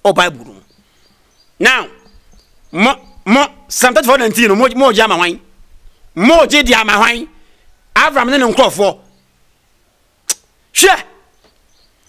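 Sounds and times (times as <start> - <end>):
sharp click: 10.3 - 10.5.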